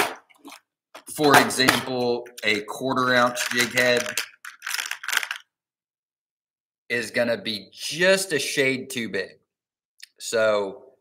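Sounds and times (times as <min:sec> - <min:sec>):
fishing tackle rustles and clicks: 0:03.0 - 0:05.5.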